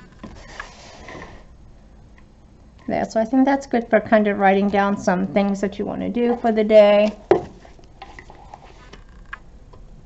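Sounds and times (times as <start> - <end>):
paper rustling: 0.2 - 1.4.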